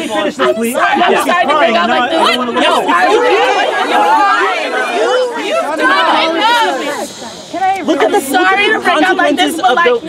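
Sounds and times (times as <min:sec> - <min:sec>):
voices arguing: 0:00.0 - 0:10.0.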